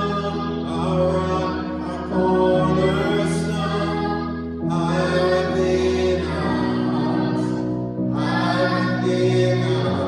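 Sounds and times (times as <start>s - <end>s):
electric keyboard chords: 0.0s - 10.0s
man singing slow song: 0.0s - 10.0s.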